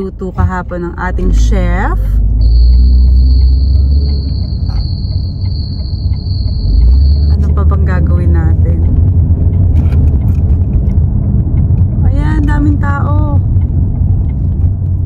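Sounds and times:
car road rumble: 0:00.0 - 0:15.0
steady high-pitched tone: 0:02.4 - 0:08.5.

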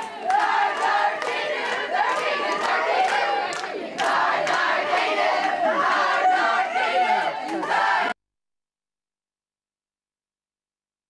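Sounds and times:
girls singing and shouting: 0:00.0 - 0:08.2
rhythmic clapping: 0:00.0 - 0:08.2.

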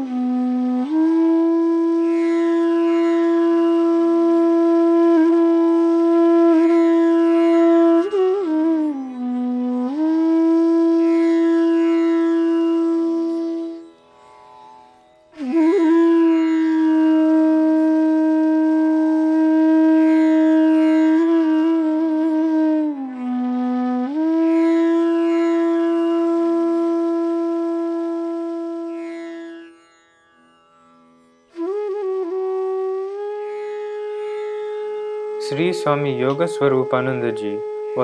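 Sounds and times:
flute holding long note: 0:00.0 - 0:14.3, 0:15.3 - 0:29.9, 0:31.5 - 0:38.0.

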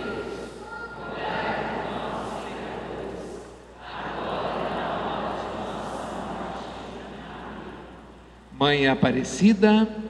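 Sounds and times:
murmur of congregation voices: 0:00.0 - 0:10.0.

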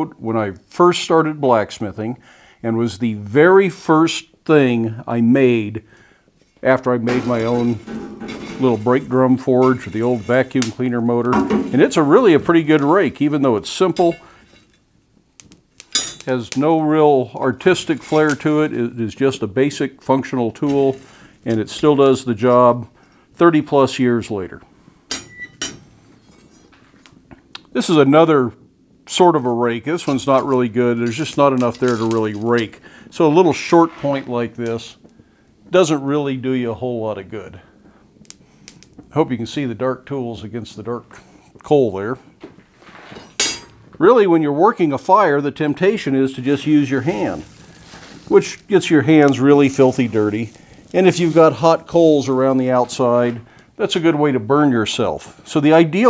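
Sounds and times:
metal forge tools clattering: 0:06.4 - 0:14.9, 0:15.8 - 0:16.4, 0:25.1 - 0:26.8, 0:30.0 - 0:32.8, 0:43.1 - 0:43.8
metal rake clinking against coal: 0:06.5 - 0:10.8, 0:13.7 - 0:14.8, 0:15.8 - 0:16.3.

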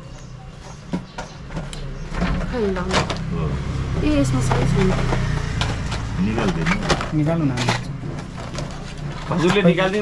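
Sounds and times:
vehicle engine running: 0:01.8 - 0:10.0
people talking: 0:02.5 - 0:05.0, 0:06.2 - 0:08.0, 0:09.3 - 0:10.0.

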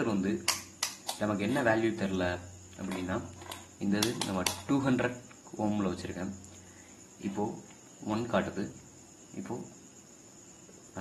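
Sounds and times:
man speaking: 0:01.2 - 0:06.4.

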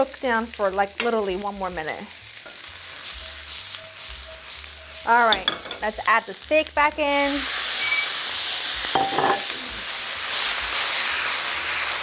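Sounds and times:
meat and vegetables sizzling in skillet: 0:00.0 - 0:12.0.

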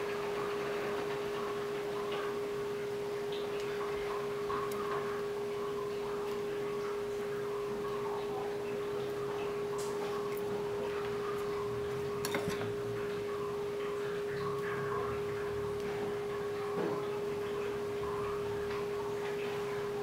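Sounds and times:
steady one-pitch hum: 0:00.0 - 0:20.0.

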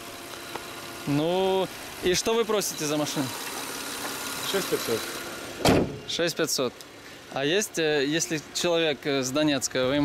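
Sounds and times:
car engine idling: 0:00.0 - 0:10.0
loud thump: 0:05.6 - 0:06.0.

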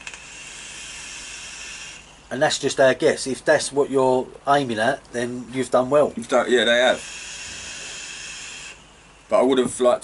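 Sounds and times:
hiss of e-liquid vaporising: 0:00.1 - 0:02.2, 0:06.8 - 0:09.2.

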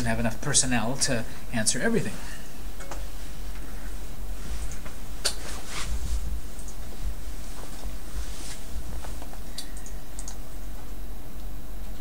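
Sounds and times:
steady low hum: 0:00.0 - 0:12.0
faint clicks: 0:09.5 - 0:10.4.

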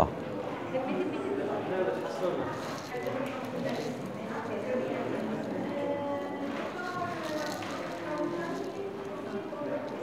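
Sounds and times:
indistinct chatter: 0:00.0 - 0:10.0.

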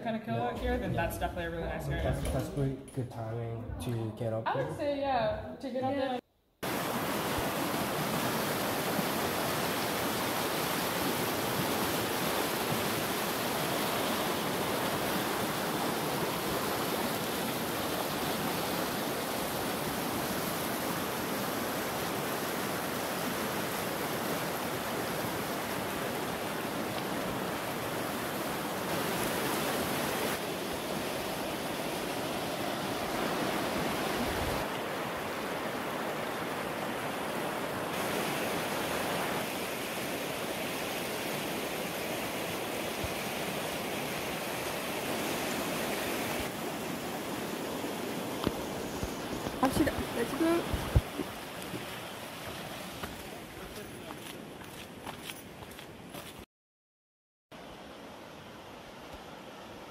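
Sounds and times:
river rushing over gravel: 0:06.6 - 0:55.4.

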